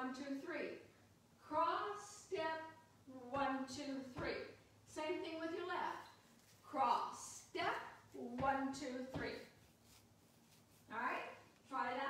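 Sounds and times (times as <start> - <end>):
woman speaking: 1.4 - 9.6, 10.9 - 12.0.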